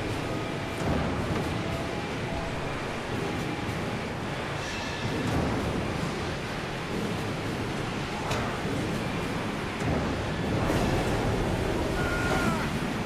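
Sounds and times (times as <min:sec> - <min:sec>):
factory machinery noise: 0:00.0 - 0:13.0.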